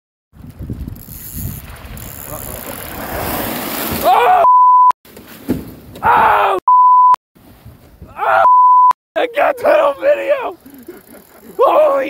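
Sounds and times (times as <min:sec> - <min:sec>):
wind buffeting microphone: 0:00.3 - 0:03.3.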